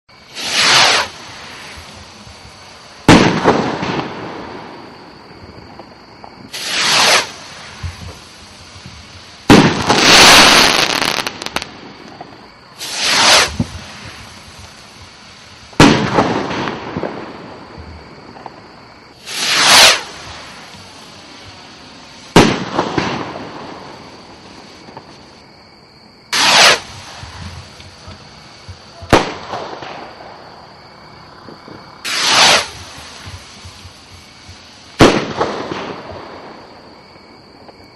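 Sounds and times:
firework crackling hiss: 0.1 - 25.5, 26.3 - 37.9
sharp firework pops: 0.3 - 4.8, 5.4 - 21.7, 22.3 - 25.4, 26.3 - 30.4, 31.4 - 36.7, 37.6 - 37.9
firework bang: 0.3 - 15.1, 15.7 - 18.6, 19.2 - 25.4, 26.3 - 30.4, 31.4 - 36.9
firework bang with echo: 0.4 - 1.1, 3.0 - 4.6, 9.4 - 11.7, 15.8 - 17.4, 22.3 - 23.6, 26.4 - 27.7, 29.0 - 30.2, 32.1 - 33.4, 35.0 - 36.6.

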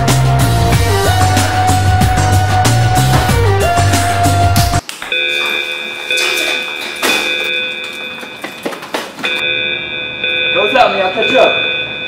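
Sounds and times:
rock music: 0.0 - 4.8.

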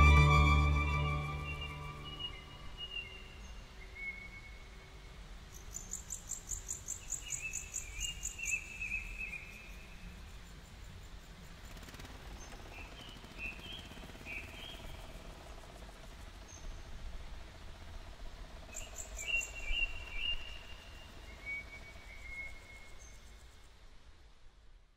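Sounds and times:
faint insect drone: 1.2 - 24.9.

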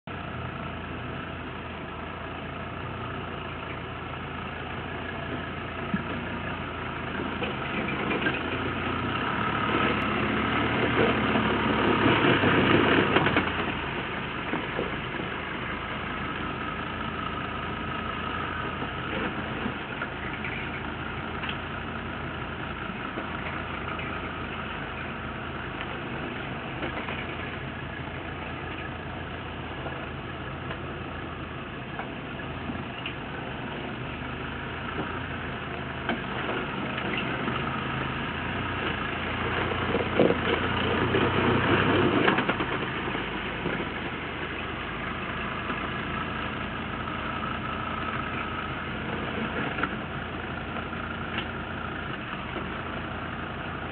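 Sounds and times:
diesel engine at low revs: 0.0 - 53.9.

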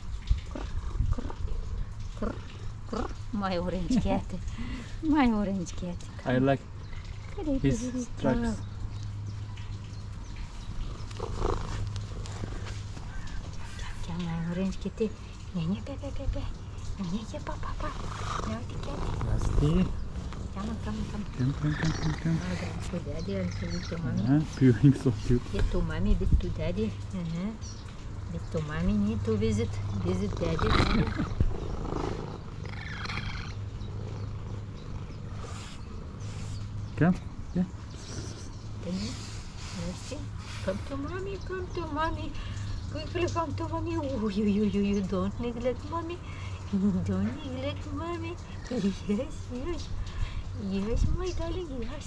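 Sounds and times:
cat purring: 10.5 - 14.7, 17.1 - 26.9, 28.6 - 41.2.

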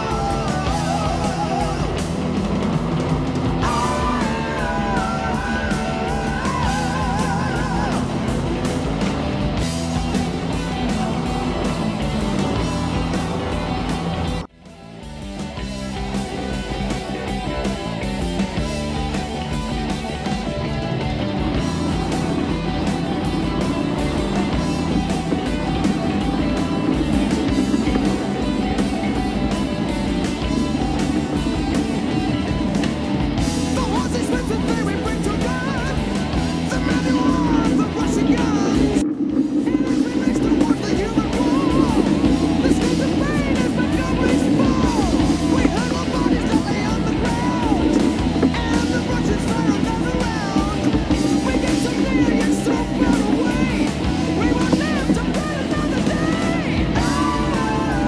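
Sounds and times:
rock music with guitar: 0.0 - 58.0.

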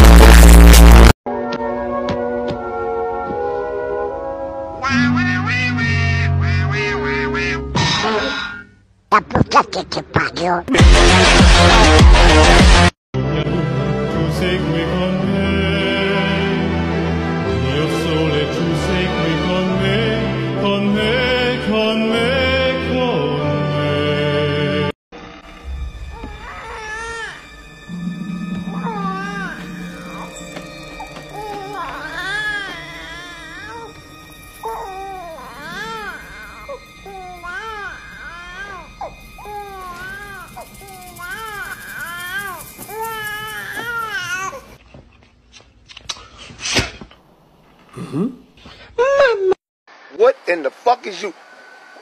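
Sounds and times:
background music: 0.0 - 8.4, 10.6 - 44.8
cartoon duck voice quacking: 9.1 - 10.7.

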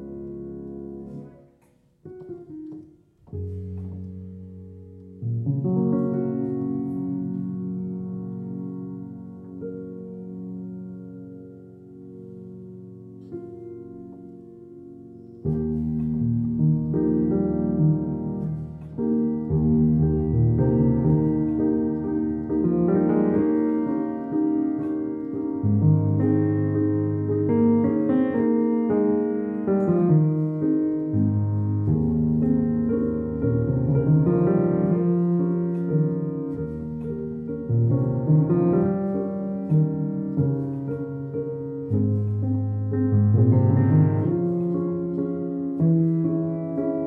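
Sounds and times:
solo piano improvisation: 0.0 - 47.0.

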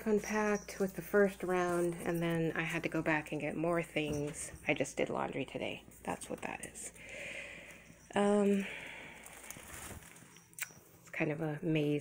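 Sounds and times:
rustling: 8.5 - 10.7.

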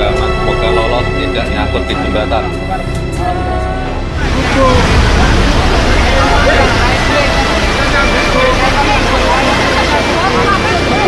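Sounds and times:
flood water rushing: 0.0 - 11.0.

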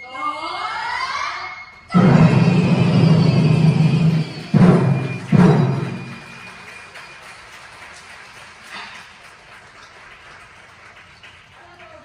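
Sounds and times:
drum strokes ringing in a hall: 1.8 - 9.4.

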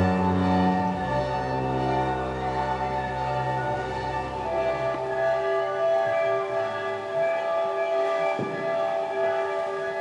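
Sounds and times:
solo violin: 0.0 - 10.0
string orchestra dissonant chords: 0.0 - 10.0.

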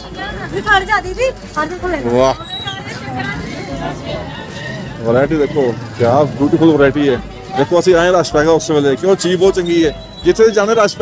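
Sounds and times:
shoppers talking: 0.0 - 11.0
street traffic: 0.0 - 11.0.

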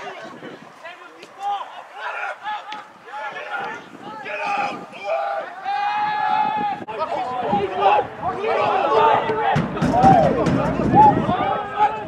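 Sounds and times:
distant players shouting: 0.0 - 12.0.

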